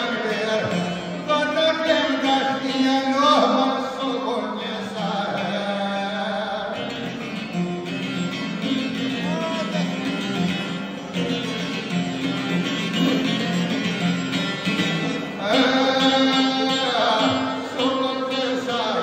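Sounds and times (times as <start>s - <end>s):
man singing: 0.0s - 7.2s, 9.0s - 10.0s, 15.4s - 19.0s
plucked lute folk melody: 0.0s - 19.0s.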